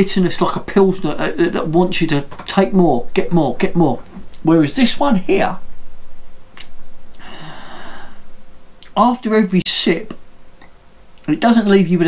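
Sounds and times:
man breathing out: 0:07.1 - 0:08.3.

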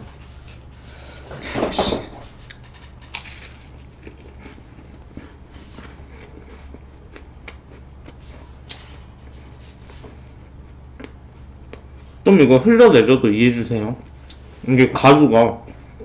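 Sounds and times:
crunching bites into biscuits: 0:02.4 - 0:08.8
chewing with small crackles: 0:02.4 - 0:12.2.

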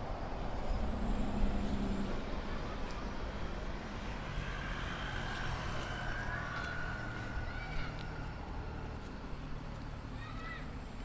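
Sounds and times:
rumble of passing cars: 0:00.0 - 0:11.0.

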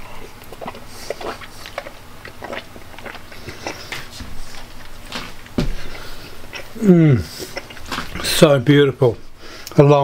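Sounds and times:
person chewing food: 0:00.0 - 0:08.5.

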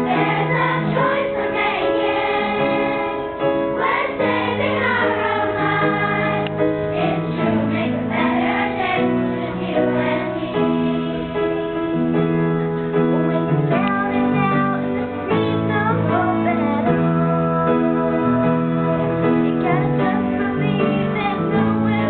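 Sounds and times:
children's choir singing: 0:00.0 - 0:11.9, 0:13.4 - 0:22.0.

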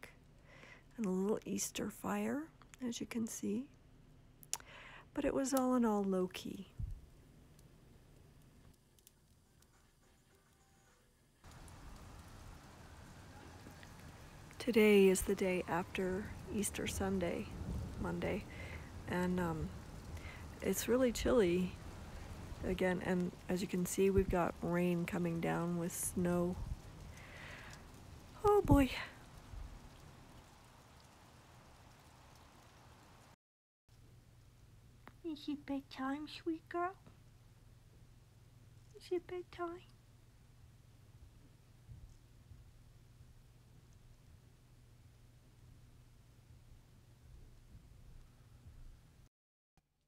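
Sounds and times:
light rain hiss: 0:00.0 - 0:49.3
wood fire ticking: 0:06.8 - 0:10.6, 0:11.4 - 0:33.4, 0:41.2 - 0:44.4
rain and wet snow hissing: 0:11.4 - 0:33.4.

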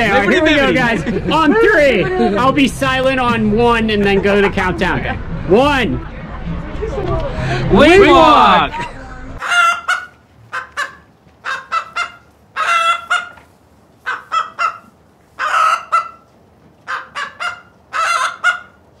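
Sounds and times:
poultry calling: 0:09.4 - 0:18.8.

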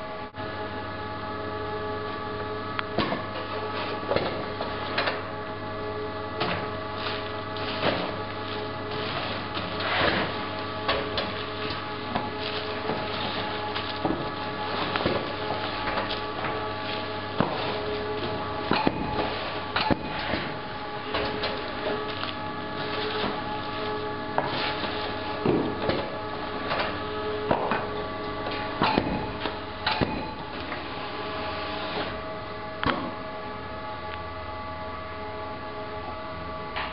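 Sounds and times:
conveyor machinery humming: 0:00.0 - 0:36.9.

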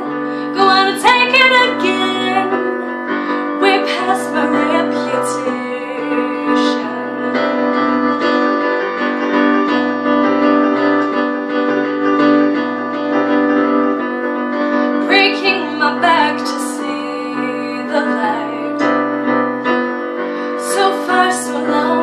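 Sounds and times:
woman singing: 0:00.0 - 0:08.0, 0:15.0 - 0:19.8, 0:20.5 - 0:22.0
sustained piano chords: 0:00.0 - 0:22.0.

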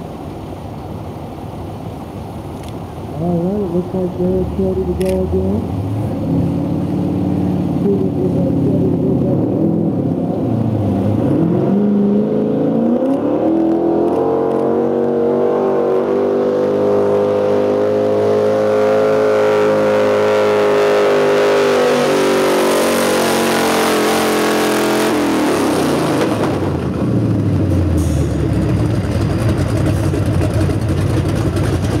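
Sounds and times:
truck engine revving: 0:03.2 - 0:32.0.

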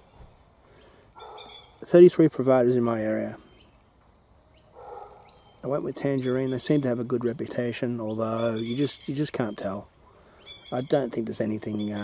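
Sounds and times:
birds calling: 0:00.0 - 0:12.0
high warbling bird call: 0:04.5 - 0:09.8.

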